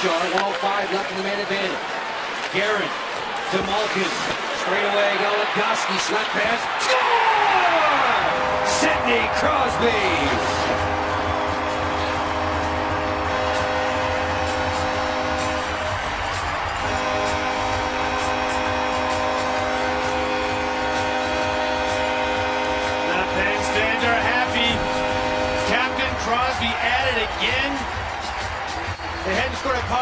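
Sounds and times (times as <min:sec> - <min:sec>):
goal horn blast: 0:03.5 - 0:27.9.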